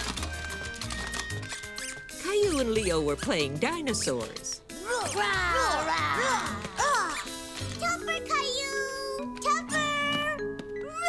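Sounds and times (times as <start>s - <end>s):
light background music: 0.0s - 11.0s
children making dinosaur noises: 4.8s - 11.0s.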